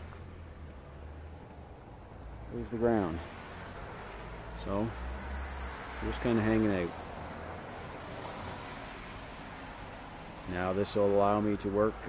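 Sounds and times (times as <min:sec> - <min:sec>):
faint outdoor rush: 0:00.0 - 0:12.0.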